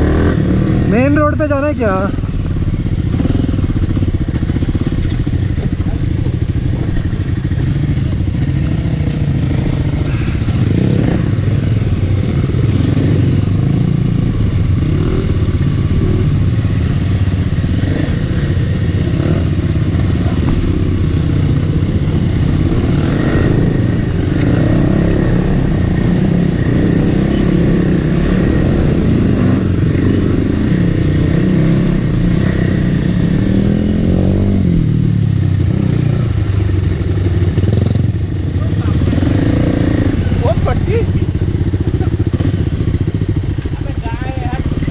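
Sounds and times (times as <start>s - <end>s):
dirt bike engine running: 0.0s - 44.9s.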